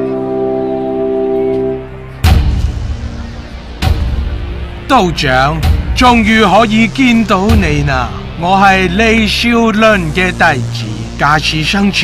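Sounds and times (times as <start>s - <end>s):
brass sustained chord: 0.0s - 5.3s
low bass note: 0.0s - 11.3s.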